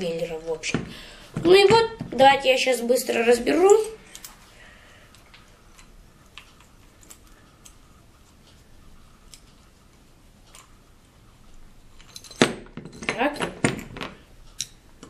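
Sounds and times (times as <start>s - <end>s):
metallic ticks and clicks of bolt: 14.5s - 14.8s.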